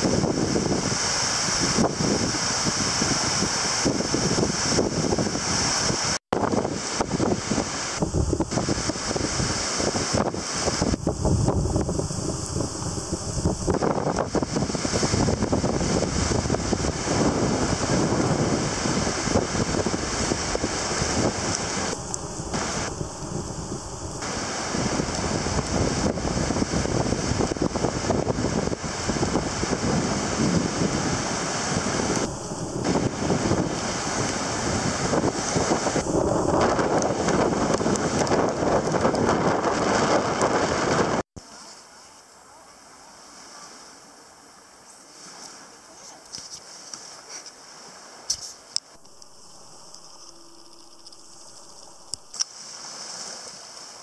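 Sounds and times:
wind buffeting microphone: 0.0s - 41.3s
surf breaking on beach: 0.0s - 41.9s, 45.1s - 54.0s.

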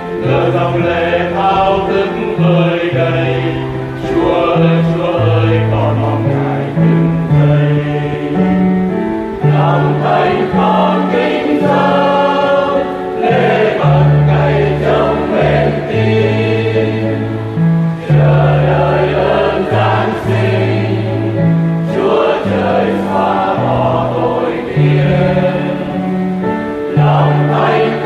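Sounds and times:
choir singing a hymn: 0.0s - 28.0s.

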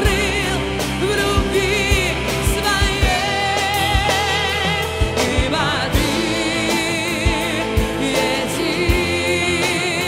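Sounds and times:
person singing with vibrato: 0.0s - 10.0s.

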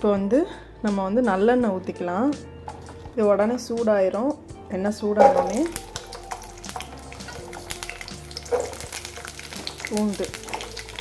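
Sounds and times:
garlic sizzling in oil: 5.2s - 11.0s.

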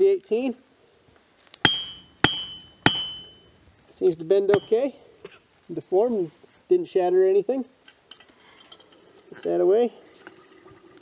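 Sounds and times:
anvil ringing: 1.6s - 3.6s, 4.5s - 4.9s
hammer blows on anvil: 1.6s - 3.6s, 4.5s - 4.8s.

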